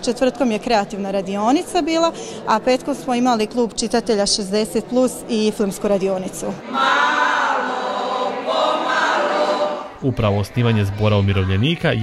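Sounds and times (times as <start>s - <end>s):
choir singing in unison: 6.6s - 12.0s.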